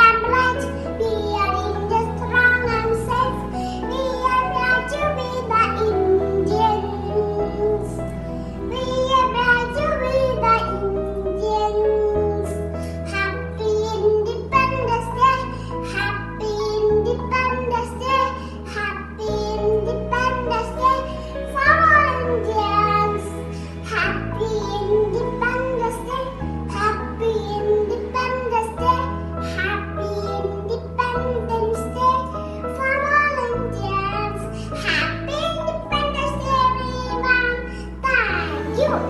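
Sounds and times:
song with sung melody: 0:38.0 - 0:39.0.

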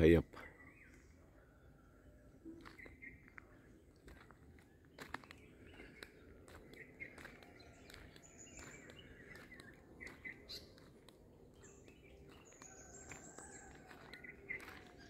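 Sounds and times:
faint birds chirping: 0:00.0 - 0:15.0
low steady outdoor background: 0:00.0 - 0:15.0.

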